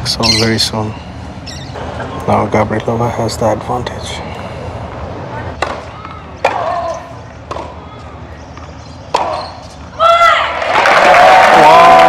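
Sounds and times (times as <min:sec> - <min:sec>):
tennis ball struck with rackets: 0:05.6 - 0:07.8, 0:08.5 - 0:09.6.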